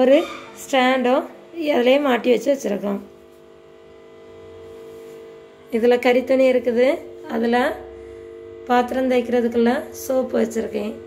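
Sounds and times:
electrical hum with pitched tones: 0.0s - 11.0s.

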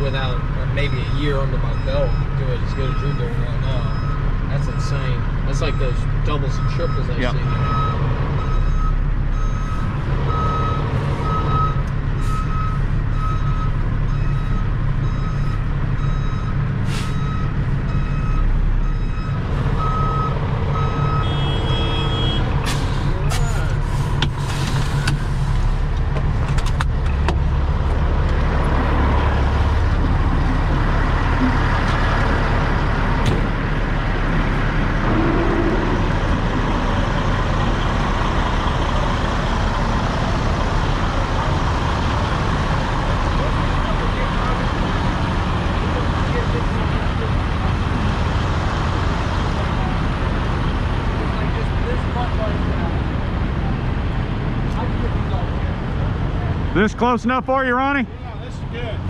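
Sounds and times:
diesel engine rumble: 0.0s - 59.0s
reversing alarm beeping: 0.3s - 22.5s.

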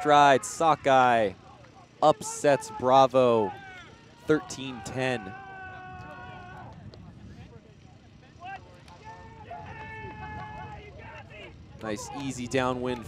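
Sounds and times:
players shouting and cheering: 0.0s - 7.2s, 8.3s - 13.0s.

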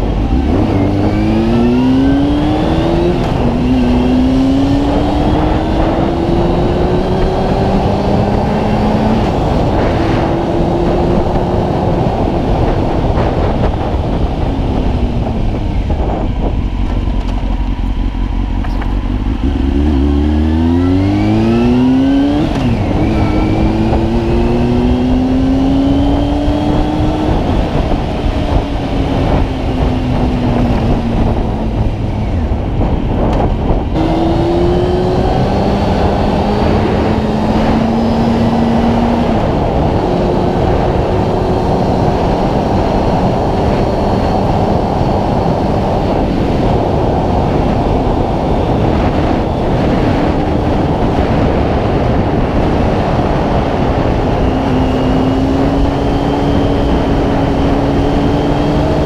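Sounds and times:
motorcycle engine accelerating: 0.0s - 59.0s.

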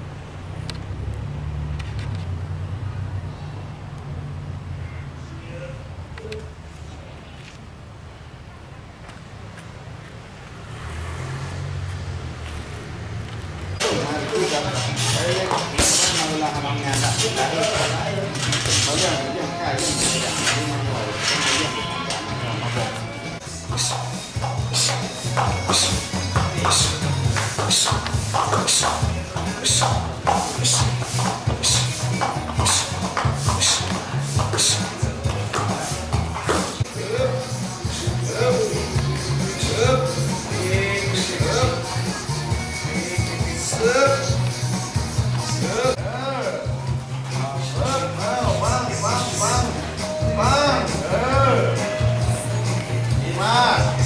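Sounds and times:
vehicle engine passing: 0.0s - 5.3s, 10.2s - 44.8s
music with bass and beat: 16.7s - 54.0s.

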